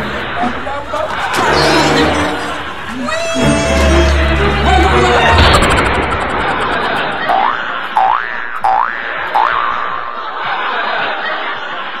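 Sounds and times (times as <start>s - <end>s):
cartoon laughing and snickering: 0.4s - 8.0s
cartoon boing sound effects: 7.3s - 10.0s.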